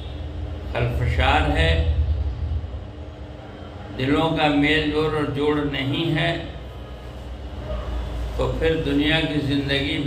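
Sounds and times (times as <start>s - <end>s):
low room noise rumble: 0.0s - 10.0s.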